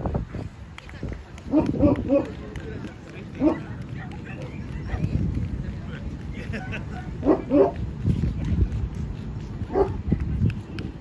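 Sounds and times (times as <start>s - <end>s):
dog barking: 6.9s - 7.8s, 9.7s - 10.0s.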